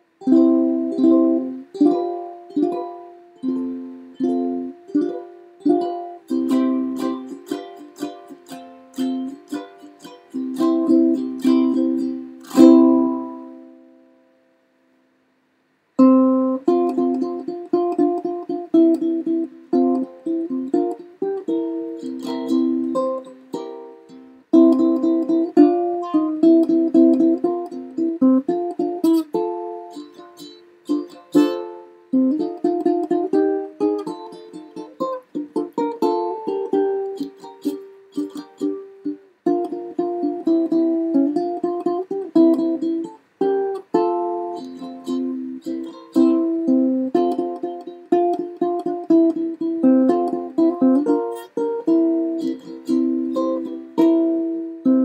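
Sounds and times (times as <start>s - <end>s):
ukulele plucked chords: 0.0s - 14.9s, 16.0s - 55.0s.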